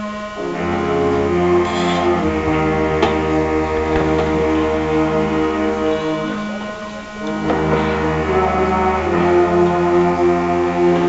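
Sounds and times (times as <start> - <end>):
concert band holding chords: 0.0 - 11.0.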